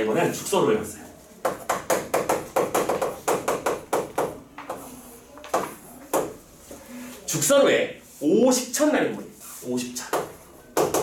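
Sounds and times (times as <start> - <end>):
chalk tapping and scratching: 1.4 - 6.4, 9.4 - 11.0.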